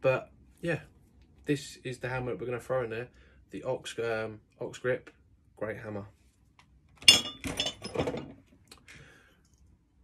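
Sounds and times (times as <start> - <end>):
metal tools clinking and clattering: 7.0 - 8.4.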